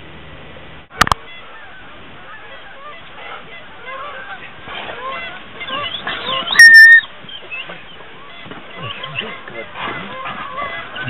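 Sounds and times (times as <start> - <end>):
geese honking: 1.1 - 11.0.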